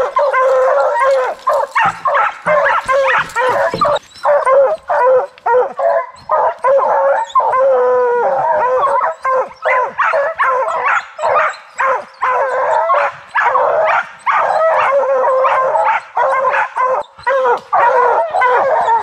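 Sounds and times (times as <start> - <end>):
dog howling: 0.0 - 19.0
hounds barking and yipping: 0.0 - 19.0.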